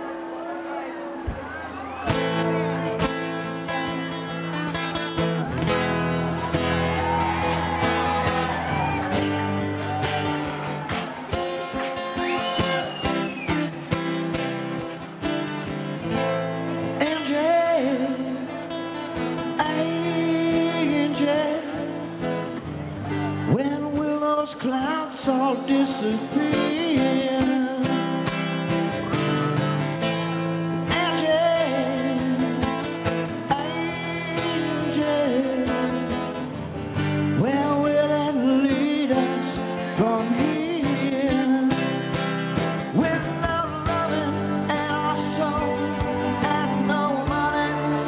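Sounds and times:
guitar: 0.0s - 48.0s
blues-rock band playing ballad: 1.4s - 48.0s.

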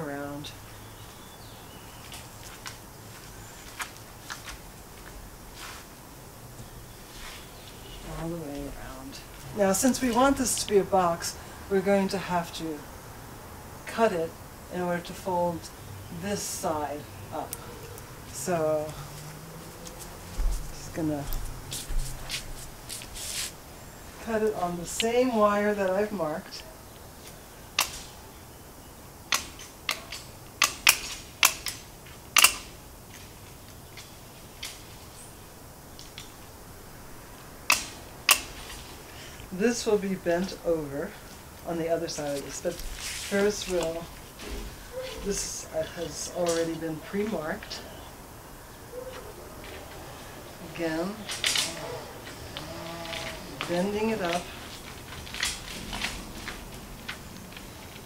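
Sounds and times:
snips cutting wire mesh: 27.8s - 28.1s, 29.3s - 31.8s, 32.4s - 32.8s, 37.7s - 38.6s.

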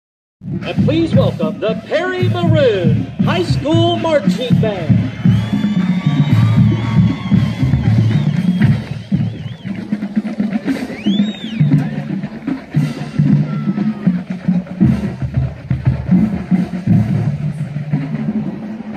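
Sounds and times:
band music with drums: 0.4s - 18.9s
high whistle rising and falling: 5.2s - 9.8s.

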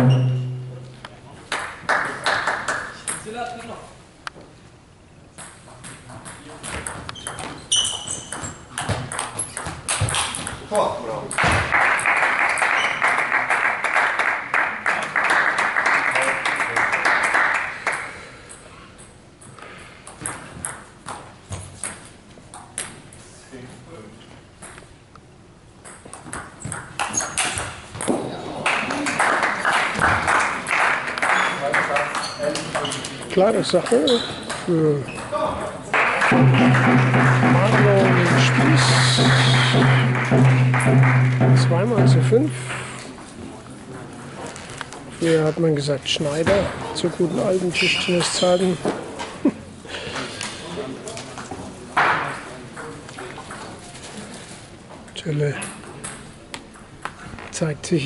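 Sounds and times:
spectators applauding: 11.7s - 18.0s, 28.6s - 32.2s, 35.9s - 42.5s.

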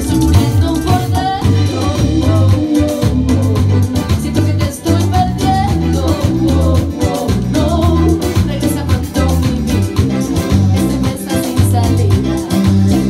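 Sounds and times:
electric guitar: 0.0s - 13.0s
man singing: 0.0s - 13.0s
steady drum beat: 0.0s - 13.0s
woman singing: 0.0s - 13.0s.

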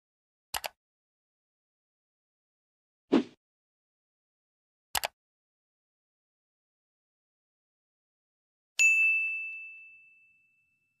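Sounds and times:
high bell ding: 8.8s - 11.0s.

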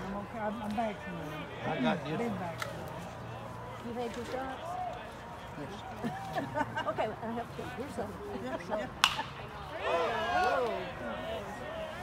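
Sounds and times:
bat cracking against ball: 9.0s - 9.4s.

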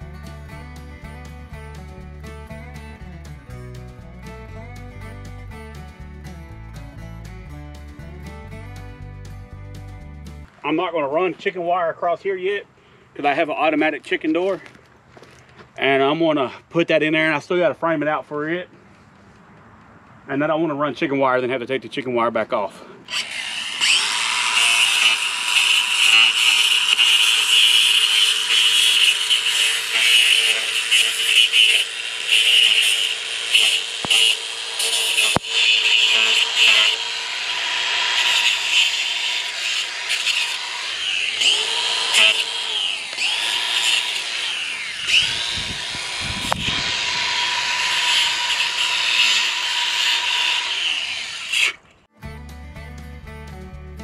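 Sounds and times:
air compressor running: 23.3s - 50.7s.

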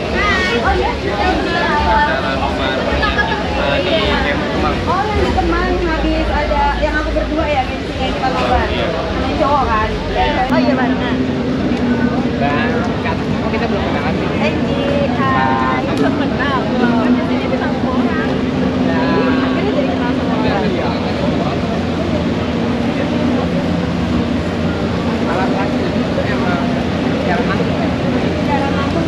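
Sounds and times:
indistinct chatter: 0.0s - 29.0s
low hum: 0.0s - 29.0s
steady low rumble: 0.0s - 29.0s.

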